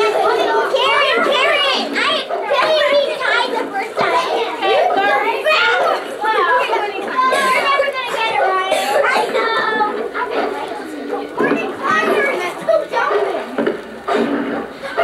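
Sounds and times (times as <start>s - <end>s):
children talking and calling out: 0.0s - 15.0s.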